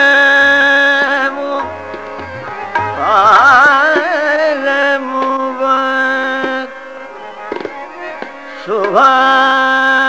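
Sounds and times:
tabla: 0:00.0 - 0:10.0
man singing a long note: 0:01.3 - 0:06.7.

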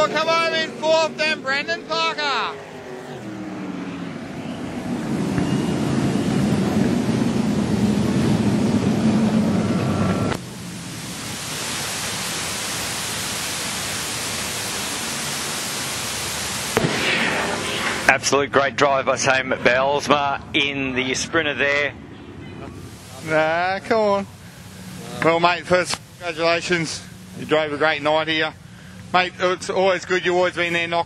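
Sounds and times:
race car engines: 0:00.0 - 0:11.0, 0:13.8 - 0:31.0
steady rushing noise: 0:00.0 - 0:31.0.

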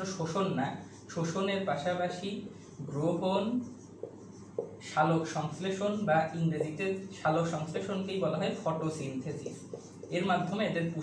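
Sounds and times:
man speaking: 0:00.0 - 0:03.7, 0:04.8 - 0:11.0
marker writing on whiteboard: 0:00.0 - 0:11.0.

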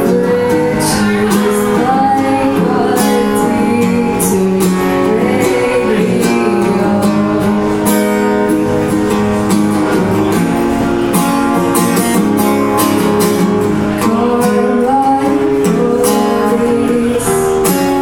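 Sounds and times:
woman singing into a microphone: 0:00.0 - 0:08.5, 0:13.6 - 0:18.0
acoustic guitar strumming: 0:00.0 - 0:18.0.

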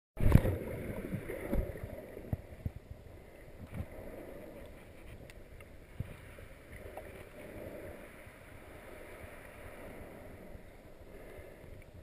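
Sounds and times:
muffled underwater water movement: 0:00.2 - 0:12.0.

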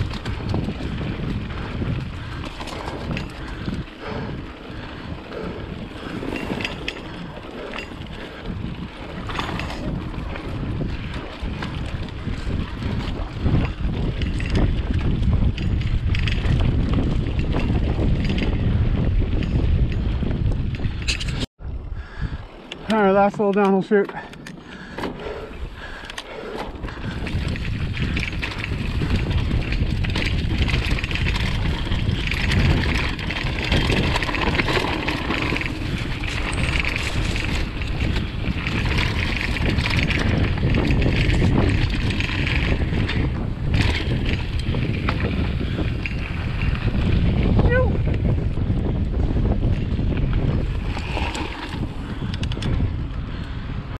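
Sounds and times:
bike tyres rumbling on dirt: 0:00.0 - 0:54.0
wind buffeting microphone: 0:00.0 - 0:54.0.

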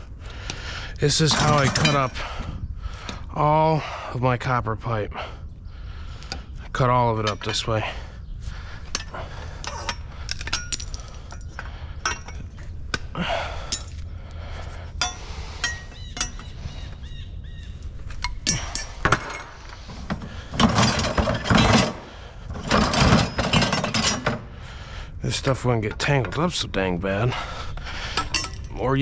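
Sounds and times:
scrap metal rattling: 0:01.0 - 0:02.5, 0:18.1 - 0:24.7.

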